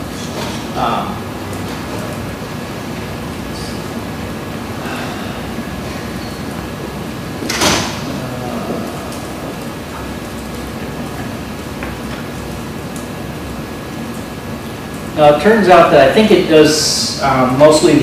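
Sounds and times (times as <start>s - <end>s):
faint constant whine: 0.0s - 18.0s.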